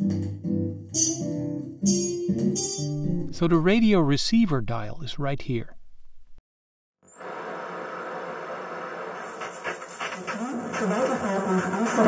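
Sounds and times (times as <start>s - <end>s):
station announcement: 3.2s - 5.6s.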